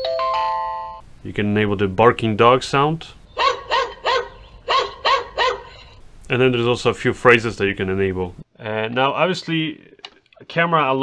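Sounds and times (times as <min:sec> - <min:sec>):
recorded dog barking: 0:03.3 - 0:06.0.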